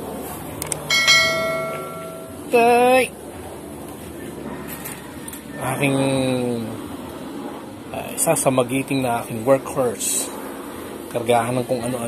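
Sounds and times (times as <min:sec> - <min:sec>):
bell chime: 0:00.9 - 0:02.5.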